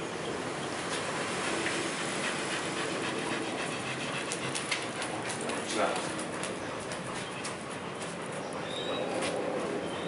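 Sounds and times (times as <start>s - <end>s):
dogs panting: 0.4s - 10.0s.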